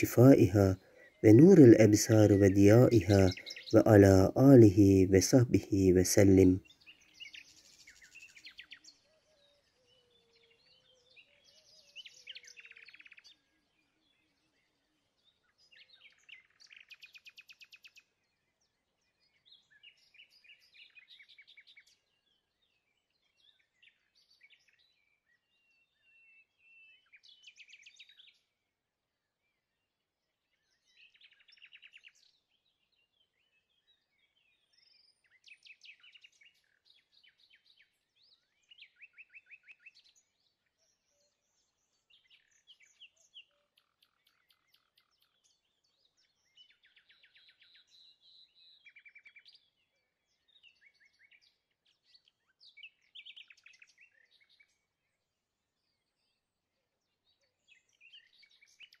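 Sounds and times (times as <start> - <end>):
faint songbirds chirping: 0.0 - 59.0.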